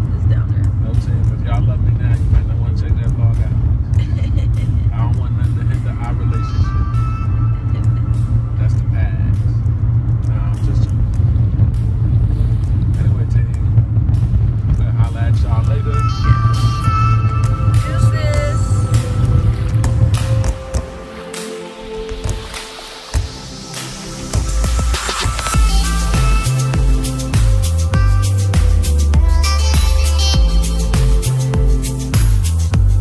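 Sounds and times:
music playing quietly: 0.0s - 33.0s
road and engine rumble: 0.0s - 33.0s.

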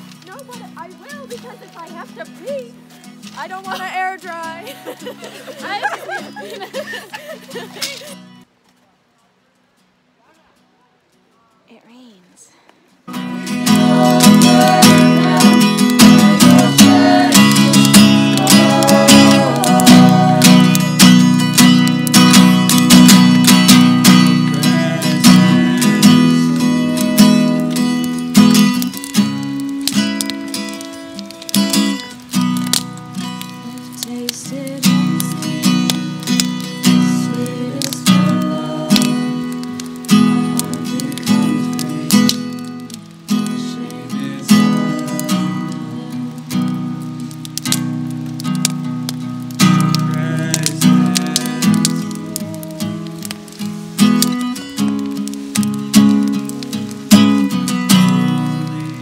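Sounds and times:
acoustic guitar strumming chords: 13.1s - 59.0s.

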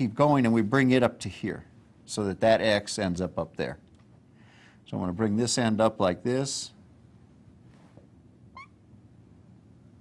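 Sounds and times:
marker squeaking on whiteboard: 8.5s - 8.8s.

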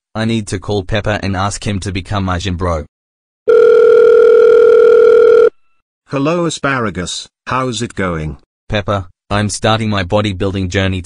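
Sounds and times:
telephone ringback tone: 3.5s - 5.6s.

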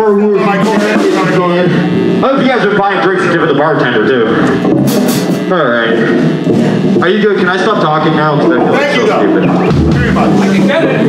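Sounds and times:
distorted electric guitars: 0.0s - 11.0s
drum kit: 0.0s - 11.0s
cymbal crash: 4.3s - 7.0s.

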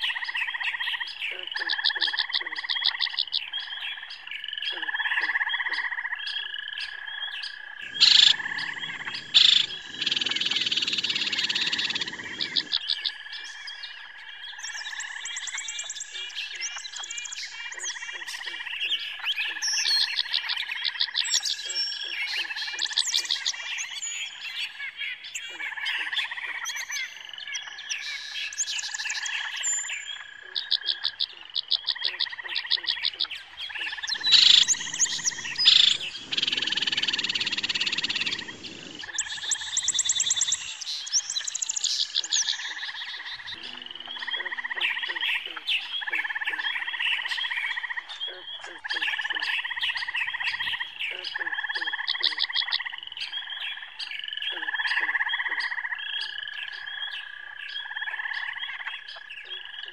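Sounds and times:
chorus of frog-like and bird-like calls: 0.0s - 59.9s.

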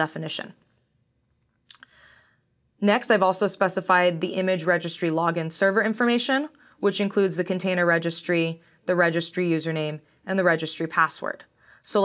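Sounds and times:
woman speaking: 0.0s - 0.6s, 2.8s - 12.0s
faint breath: 1.8s - 2.5s, 6.5s - 6.8s, 8.6s - 8.9s, 11.5s - 11.9s.

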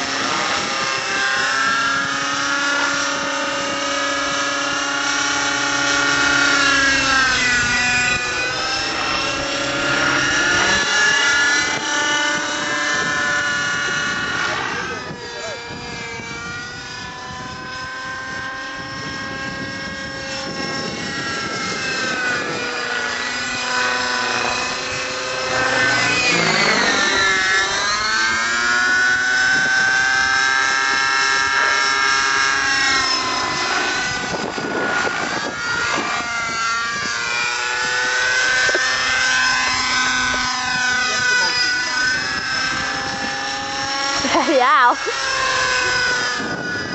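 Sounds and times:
rc helicopter engine and rotors: 0.0s - 46.9s.

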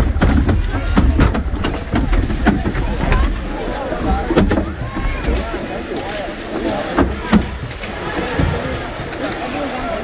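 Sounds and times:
sharp knocks and clacks: 0.0s - 5.5s
crowd talking: 0.0s - 10.0s.

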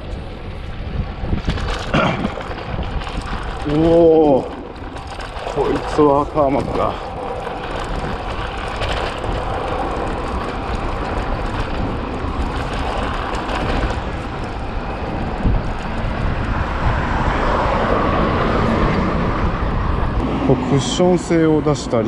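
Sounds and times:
bike tyres humming on asphalt: 0.0s - 22.0s
wind buffeting microphone: 0.0s - 22.0s.

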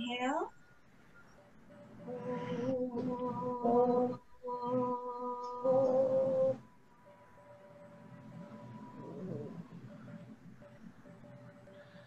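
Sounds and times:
woman chanting om: 2.1s - 6.6s.

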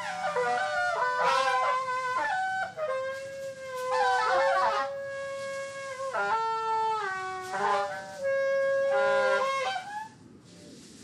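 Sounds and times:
reed wind instruments playing: 0.0s - 10.8s.

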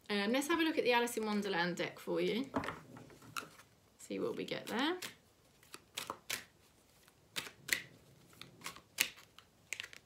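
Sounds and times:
cards being shuffled: 4.6s - 10.0s.

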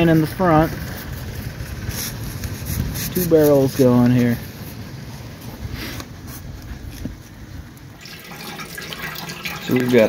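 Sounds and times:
sap boiling in steel pans: 0.0s - 10.0s.

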